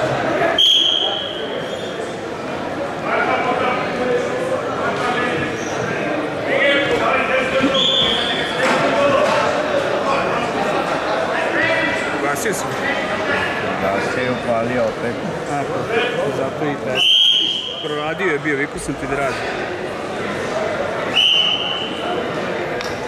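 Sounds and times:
people calling out and talking: 0:00.0 - 0:23.0
referee's whistle: 0:00.6 - 0:01.9, 0:07.7 - 0:08.5, 0:17.0 - 0:18.0, 0:21.1 - 0:22.0.

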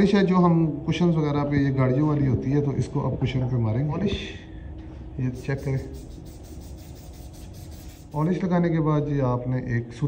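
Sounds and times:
aerosol spray hissing: 0:05.4 - 0:08.4.

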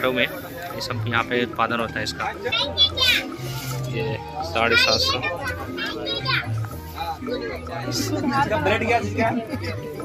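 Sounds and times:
child talking: 0:02.4 - 0:03.3, 0:04.6 - 0:06.6.

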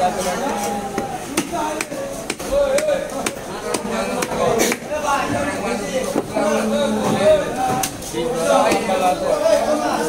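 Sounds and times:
cleaver chopping fish on wood: 0:01.3 - 0:04.8.

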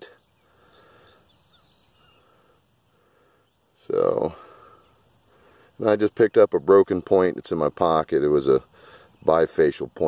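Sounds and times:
faint distant bird chirps: 0:00.0 - 0:10.0.

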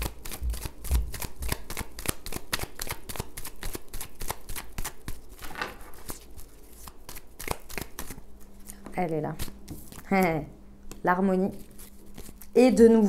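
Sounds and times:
cards being shuffled: 0:00.0 - 0:12.6.

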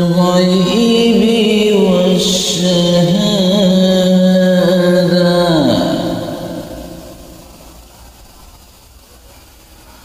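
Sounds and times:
man chanting with echo: 0:00.0 - 0:07.6
faint steady hiss: 0:00.0 - 0:10.0.

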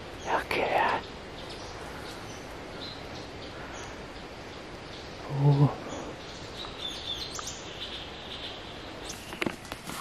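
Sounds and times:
small bird chirping: 0:00.0 - 0:10.0
steady forest hiss: 0:00.0 - 0:10.0.

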